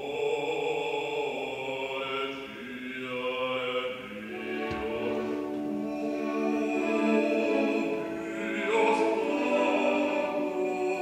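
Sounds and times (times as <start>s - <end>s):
choir and orchestra chord: 0.0s - 11.0s.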